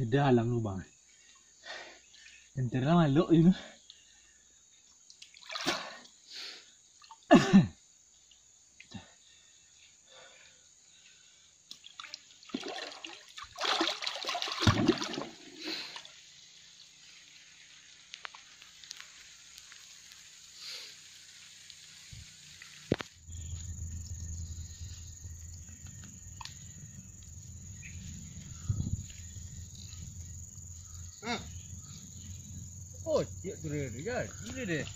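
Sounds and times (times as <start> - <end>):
water splashing in a pool: 5.1 - 6.1, 11.7 - 20.4
steady low rumble: 23.2 - 33.4.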